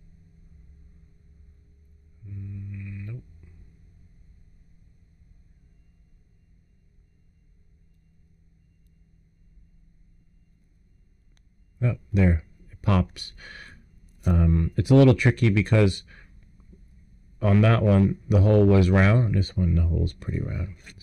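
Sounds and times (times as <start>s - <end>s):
low steady hum: 0.0s - 21.0s
man humming: 2.2s - 3.6s, 11.8s - 13.7s, 14.3s - 16.1s, 17.4s - 21.0s.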